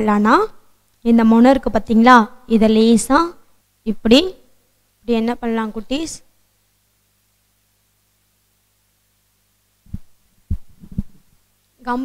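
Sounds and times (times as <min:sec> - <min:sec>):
faint low hum: 0:00.0 - 0:12.0
microphone handling thumps: 0:09.8 - 0:11.4.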